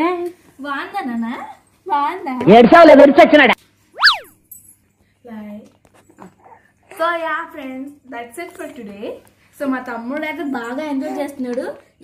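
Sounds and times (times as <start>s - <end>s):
downward-gliding whistle tone: 4.0s - 4.3s
short vocal sound: 4.0s - 4.3s.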